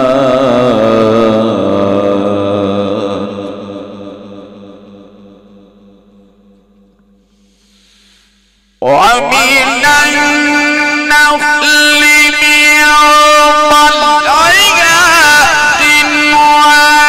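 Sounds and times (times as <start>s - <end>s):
man reciting melodically: 0.0s - 6.3s, 8.8s - 17.0s
loud voice: 8.8s - 17.0s.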